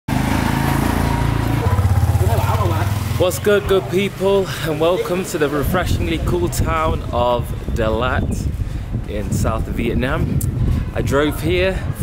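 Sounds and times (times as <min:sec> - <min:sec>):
small motorbike engine running: 0:00.1 - 0:03.2.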